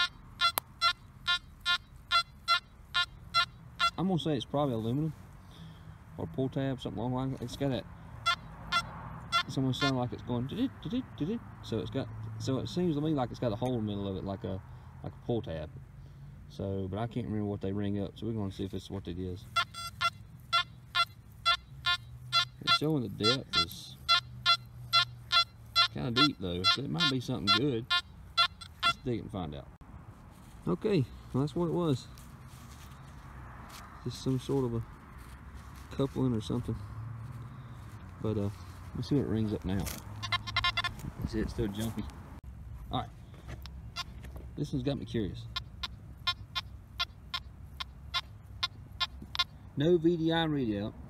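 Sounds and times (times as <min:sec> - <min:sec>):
metal detector beeps: 0:00.0 - 0:04.0, 0:08.2 - 0:10.0, 0:19.5 - 0:29.2, 0:40.2 - 0:41.0, 0:43.6 - 0:44.3, 0:45.4 - 0:49.5
outdoor background noise: 0:00.0 - 0:51.0.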